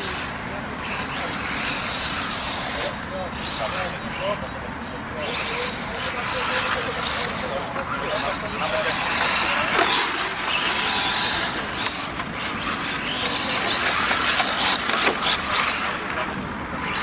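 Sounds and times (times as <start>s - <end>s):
people talking: 0.0s - 11.8s, 13.0s - 16.5s
model rally cars driving on dirt: 0.0s - 17.0s.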